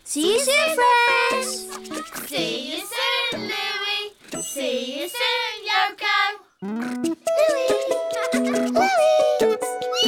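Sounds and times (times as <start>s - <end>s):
children singing wordlessly: 0.2s - 6.6s
background music: 6.6s - 10.0s.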